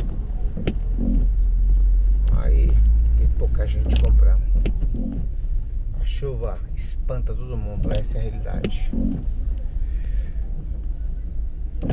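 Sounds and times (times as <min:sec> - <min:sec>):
car driving heard from cabin: 0:00.0 - 0:11.9.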